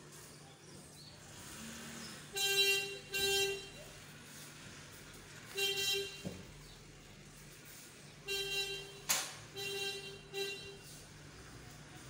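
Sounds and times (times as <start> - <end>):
vehicle horn honking: 2.3 - 3.9, 5.5 - 6.4, 8.2 - 11.0
sharp snap: 9.1 - 9.4.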